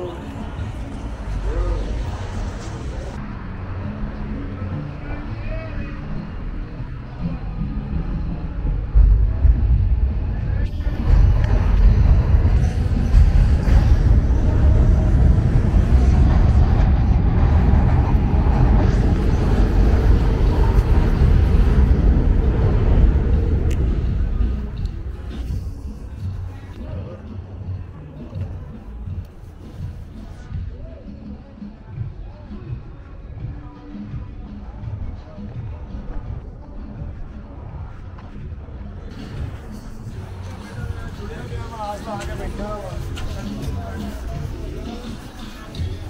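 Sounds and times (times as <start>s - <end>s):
loud uneven low rumble: 0.0s - 30.6s
traffic: 0.0s - 31.0s, 33.6s - 46.0s
passers-by's voices: 0.0s - 46.0s.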